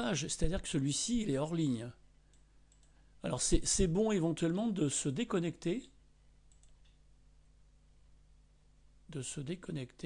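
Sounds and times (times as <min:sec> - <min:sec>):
low steady hum: 0:00.0 - 0:10.0
computer mouse clicks: 0:02.3 - 0:03.0, 0:06.5 - 0:07.0.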